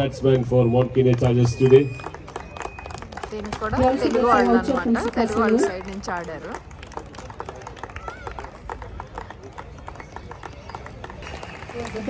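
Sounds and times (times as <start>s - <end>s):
faint background murmur: 0.0s - 12.0s
group applauding: 0.7s - 12.0s.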